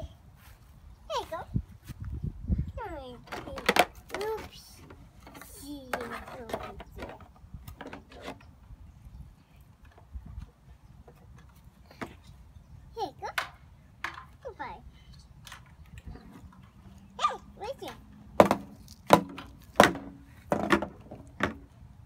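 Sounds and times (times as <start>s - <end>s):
child chattering: 17.2s - 18.0s.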